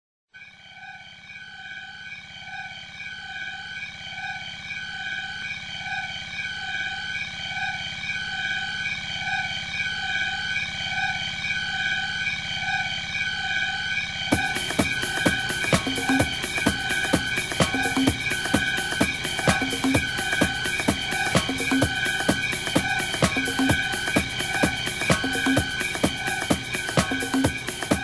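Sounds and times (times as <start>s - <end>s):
sustained synthesizer chord: 0.6s - 28.0s.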